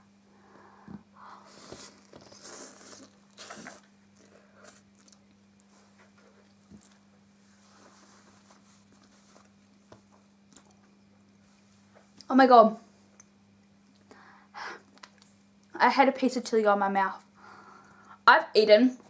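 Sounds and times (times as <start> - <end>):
person eating noodles: 1.3 - 5.7
quiet chewing clicks: 2.0 - 7.1, 9.0 - 11.2, 14.9 - 15.7.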